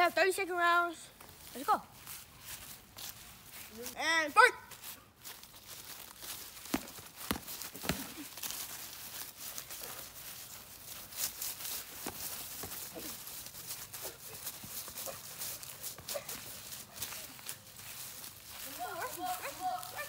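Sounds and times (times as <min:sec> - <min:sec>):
feet shuffling on dry leaves: 0:01.1 - 0:20.0.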